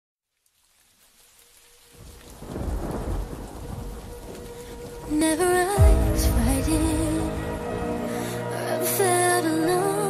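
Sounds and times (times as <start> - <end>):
rain: 0.2 - 10.0
rolling thunder: 2.0 - 8.4.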